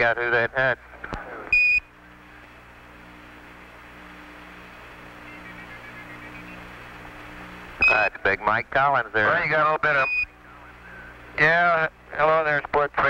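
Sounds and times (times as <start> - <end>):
radio static hiss: 0.0 - 13.0
low hum: 0.7 - 12.5.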